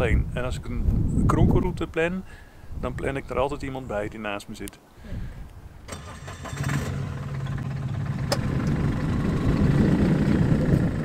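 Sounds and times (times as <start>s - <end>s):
car engine low hum: 5.9s - 11.0s
car engine starting: 5.9s - 11.0s.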